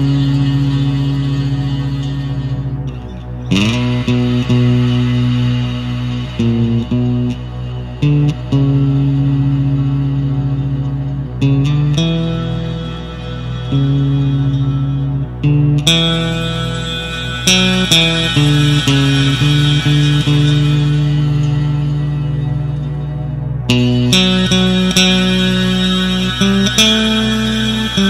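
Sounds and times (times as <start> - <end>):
electric bass sustained note: 0.0 - 28.0.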